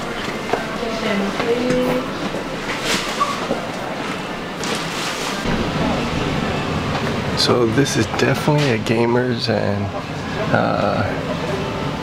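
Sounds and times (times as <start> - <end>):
steady background hum: 0.0 - 12.0
faint shoppers' voices: 7.4 - 12.0.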